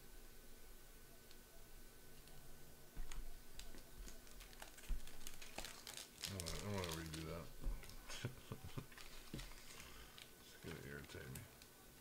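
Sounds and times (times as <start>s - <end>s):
plastic wrapping crinkling: 3.0s - 11.7s.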